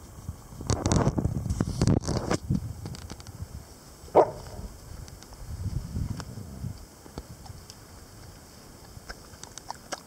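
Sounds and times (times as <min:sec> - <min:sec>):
dog barking: 0:04.1 - 0:04.7.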